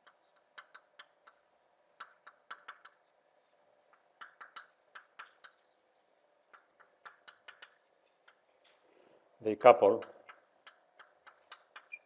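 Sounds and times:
chalk writing on blackboard: 0.0 - 8.6, 10.0 - 12.0.

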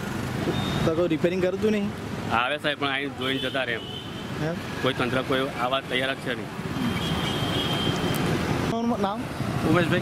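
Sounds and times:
motor vehicles passing: 0.0 - 10.0.

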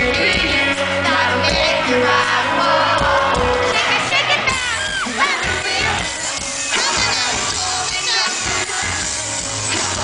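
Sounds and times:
live rock band playing: 0.0 - 10.0
crowd shouting: 0.9 - 10.0.

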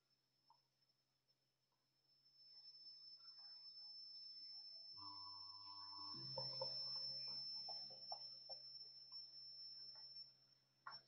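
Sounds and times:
thin high whine: 2.1 - 11.0.

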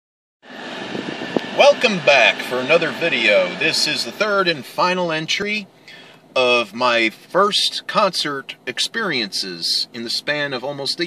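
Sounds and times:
car cabin hum: 0.5 - 11.0
man talking: 1.5 - 11.0.

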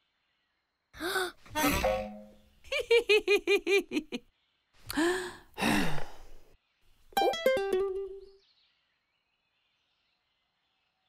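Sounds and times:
cartoon woman sighing: 1.0 - 2.0, 4.9 - 6.4.

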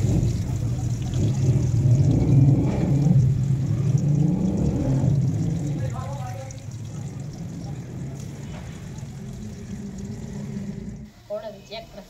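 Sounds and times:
motor humming: 0.0 - 11.1.

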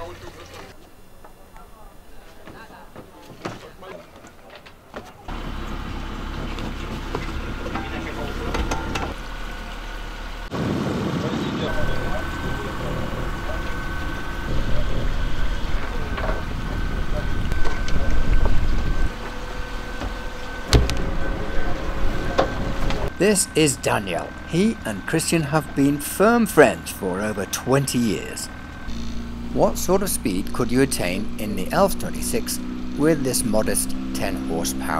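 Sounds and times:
outboard motor running: 5.3 - 34.9
faint voices: 11.1 - 18.6.

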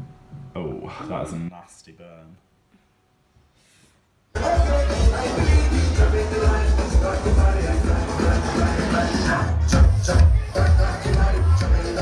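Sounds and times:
electronic dance music: 4.4 - 12.0.

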